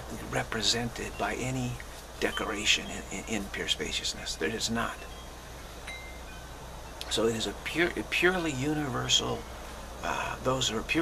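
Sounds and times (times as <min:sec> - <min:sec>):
high-pitched ringing tones: 0:00.0 - 0:11.0
steady low hum: 0:00.0 - 0:11.0.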